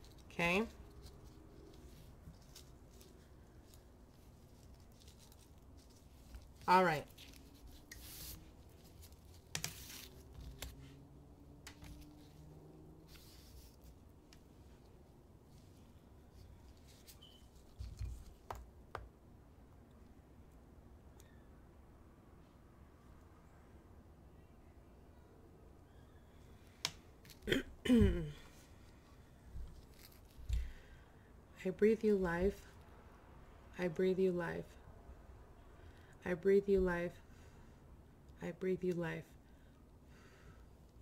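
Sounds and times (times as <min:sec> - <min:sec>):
person speaking: 0:00.0 - 0:01.7, 0:06.4 - 0:08.4.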